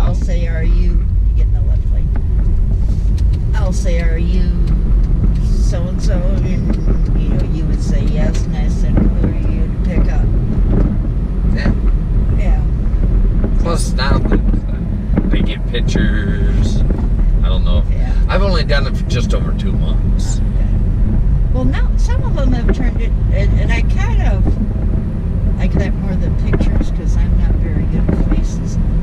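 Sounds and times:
people talking: 0.0s - 2.1s, 3.5s - 4.8s, 5.4s - 10.3s, 11.5s - 11.8s, 12.4s - 12.8s, 13.6s - 20.8s, 21.5s - 24.6s, 25.6s - 28.8s
car road and engine rumble: 0.0s - 29.0s.

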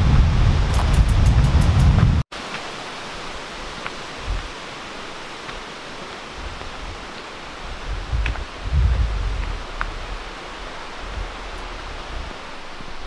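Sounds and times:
wind gusts on microphone: 0.0s - 2.3s, 3.6s - 4.9s, 6.2s - 13.0s
mountain stream rushing: 0.0s - 13.0s.

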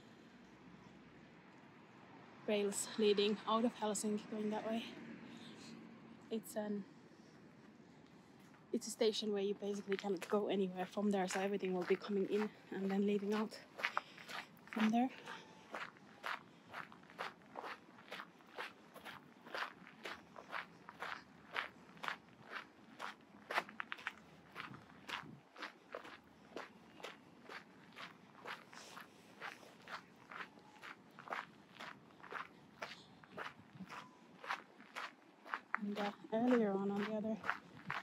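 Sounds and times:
footsteps on gravel: 9.6s - 38.0s.

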